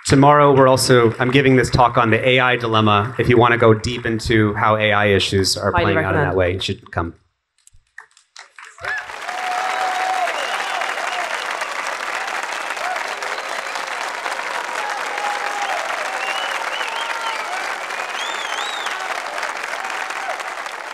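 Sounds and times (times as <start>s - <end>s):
audience applauding: 0.0s - 4.4s, 8.0s - 20.9s
voices calling out and cheering: 0.0s - 6.6s, 8.8s - 20.9s.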